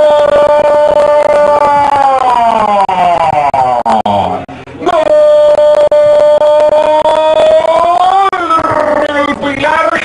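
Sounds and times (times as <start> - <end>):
commentator shouting: 0.0 - 10.0.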